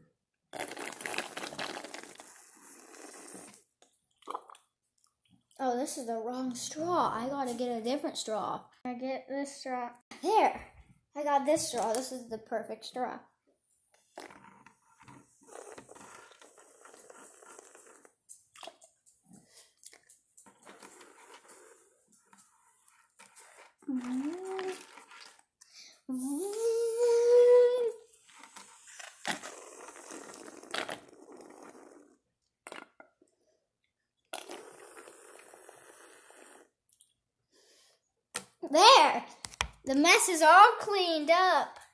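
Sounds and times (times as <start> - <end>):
slurping through drinking straw: 0.5 - 4.7, 14.0 - 33.2, 34.3 - 38.5
small crinkles and clicks: 15.8 - 25.6.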